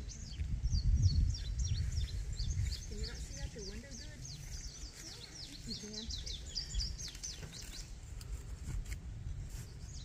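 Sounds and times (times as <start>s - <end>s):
songbirds chirping: 0.0s - 10.0s.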